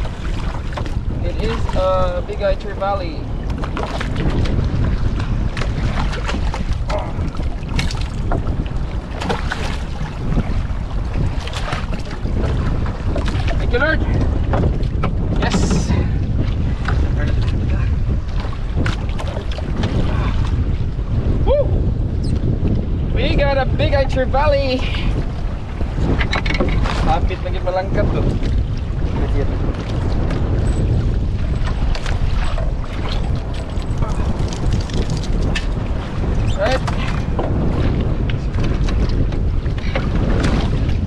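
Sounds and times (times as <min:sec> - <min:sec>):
knocks and splashes: 0:00.0 - 0:02.5, 0:03.4 - 0:21.2, 0:24.9 - 0:41.0
boat engine low rumble: 0:00.0 - 0:41.0
wind buffeting microphone: 0:00.0 - 0:41.0.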